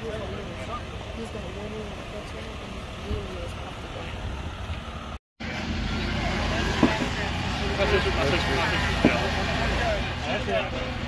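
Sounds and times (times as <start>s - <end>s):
people talking: 0.0s - 4.5s, 5.4s - 11.0s.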